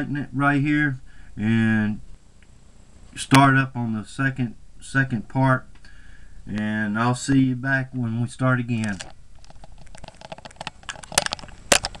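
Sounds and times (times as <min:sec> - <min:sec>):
camera handling rustles: 0:08.8 - 0:12.0.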